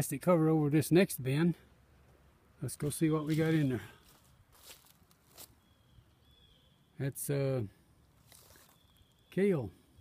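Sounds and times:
footsteps on grass and dry leaves: 2.7s - 5.9s, 8.2s - 9.2s.

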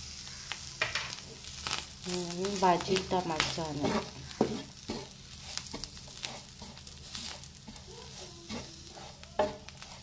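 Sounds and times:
light sizzle of frying: 0.0s - 10.0s
spatula scraping frying pan: 2.5s - 10.0s.

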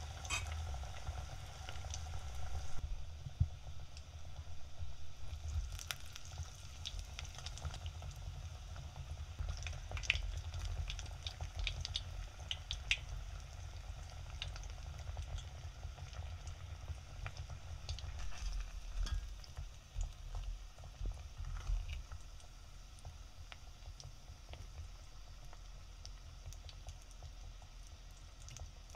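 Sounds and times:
low steady hum: 0.0s - 7.4s
food deep-frying in hot oil: 0.0s - 28.9s
oil crackling and popping: 5.2s - 28.9s.

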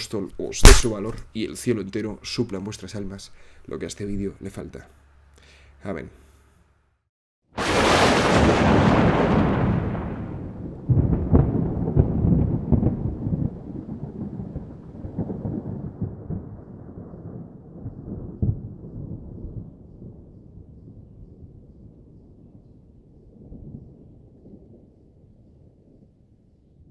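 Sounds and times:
thunder clap and rumble: 7.6s - 22.6s.

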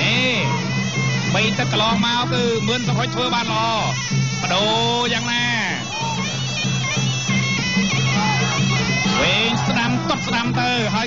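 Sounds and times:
reed oboe melody: 0.0s - 11.0s.

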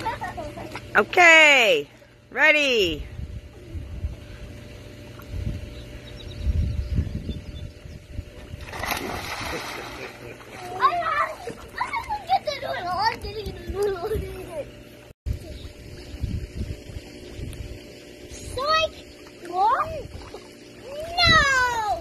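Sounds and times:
splash into swimming pool: 8.6s - 11.8s.

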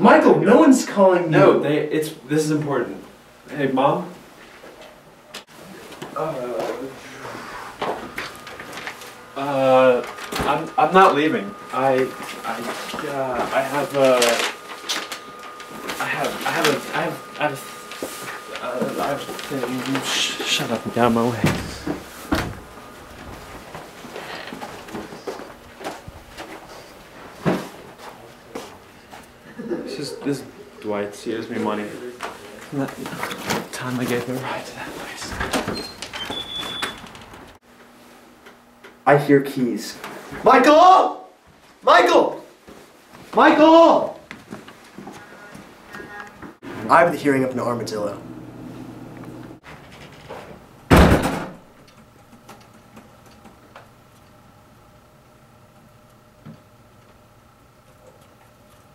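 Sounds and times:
door thumping shut: 21.4s - 22.7s, 50.9s - 51.6s.

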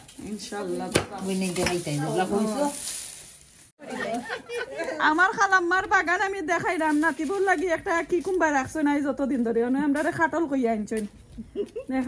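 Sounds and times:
woman talking: 0.2s - 2.8s, 3.9s - 11.1s.

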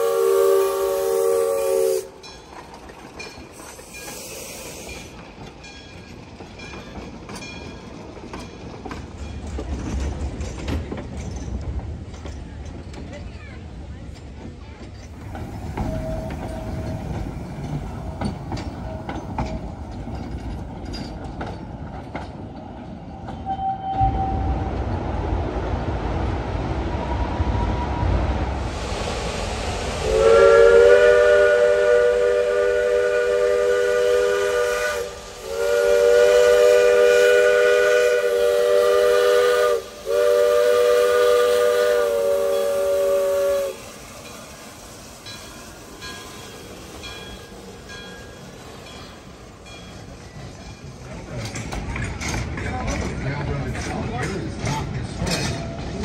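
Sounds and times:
steam locomotive whistle blasts: 0.0s - 2.3s, 15.7s - 17.2s, 23.4s - 24.6s, 29.9s - 44.4s
steam train rumbling: 0.0s - 56.0s
wheels clicking and clanking: 14.1s - 23.4s, 44.2s - 56.0s.

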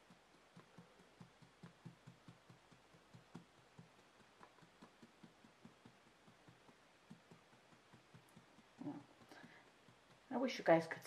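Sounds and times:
paintbrush dabbing soft taps: 0.0s - 10.8s.

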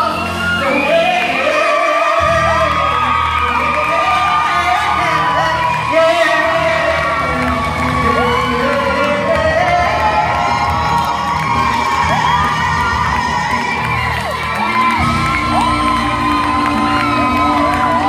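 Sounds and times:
audience cheering and whooping: 0.0s - 18.0s
live gospel band playing: 0.0s - 18.0s.

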